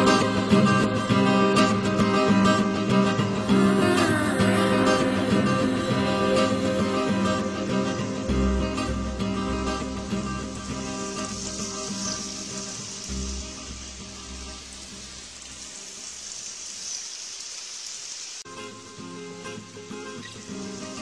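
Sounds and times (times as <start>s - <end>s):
background music: 0.0s - 15.2s.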